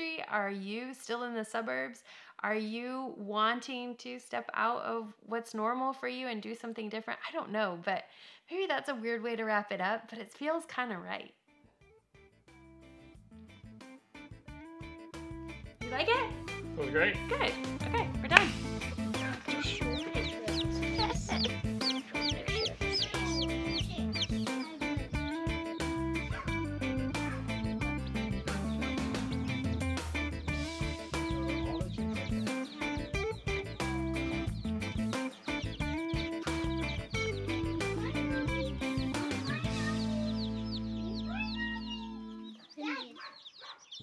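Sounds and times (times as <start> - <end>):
background music: 11.8 - 42.6
baby chicks peeping: 17.2 - 44.0.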